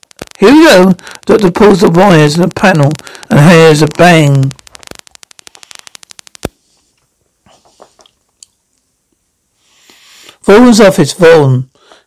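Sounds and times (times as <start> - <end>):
fast run of electrical clicks: 0.0 - 6.6.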